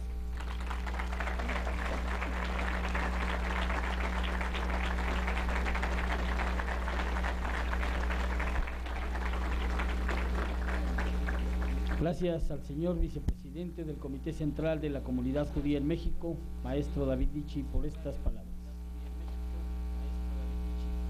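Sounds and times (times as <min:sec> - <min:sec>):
low electrical hum: 0:00.0 - 0:21.0
audience applauding: 0:00.3 - 0:12.2.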